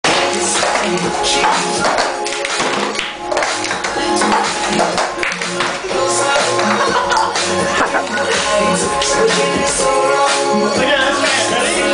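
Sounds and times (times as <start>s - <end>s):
music playing: 0.0s - 11.9s.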